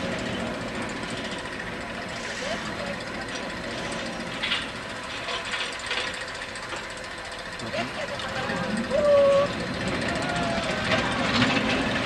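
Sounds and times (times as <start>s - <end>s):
distant voices: 0.0s - 12.0s
steady background rumble: 0.0s - 12.0s.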